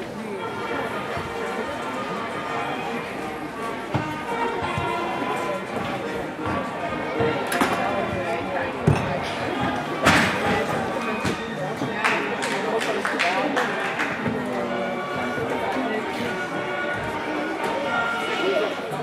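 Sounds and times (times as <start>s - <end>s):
music in echoing hall: 0.0s - 19.0s
voices in echoing hall: 0.0s - 19.0s.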